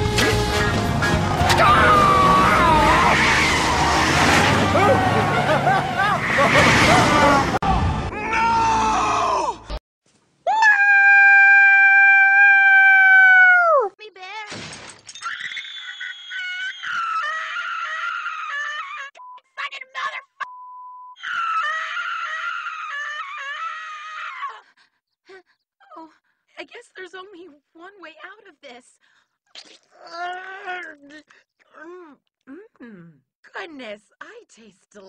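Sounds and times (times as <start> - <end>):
cartoon character screaming: 1.4 - 3.8, 7.2 - 9.6, 10.5 - 13.9
short crash: 3.0 - 8.1
squeaky cartoon voice crying: 15.2 - 17.4.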